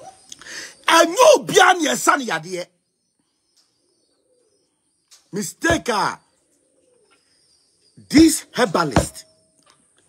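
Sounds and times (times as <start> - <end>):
dove cooing: 3.9 - 4.8, 5.7 - 7.4.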